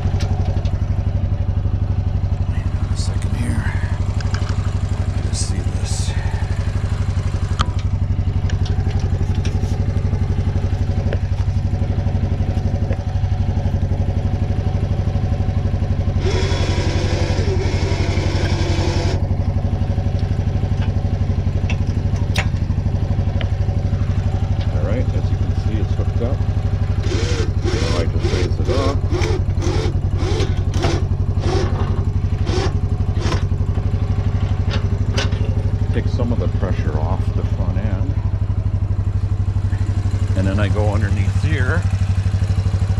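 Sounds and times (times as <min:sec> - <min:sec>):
atv engine idling: 0:00.0 - 0:42.9
harsh whirring noise: 0:27.0 - 0:31.8
metallic clicks and knocks: 0:34.6 - 0:35.6.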